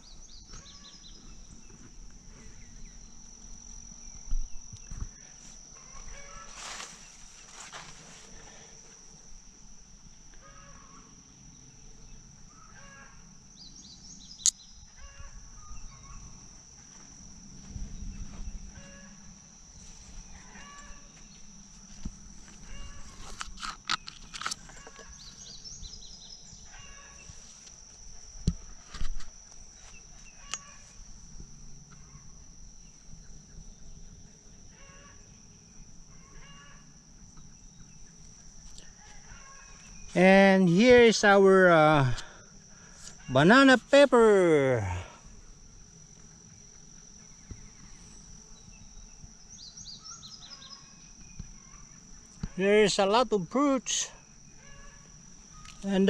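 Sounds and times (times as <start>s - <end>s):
insects droning: 0.0s - 56.0s.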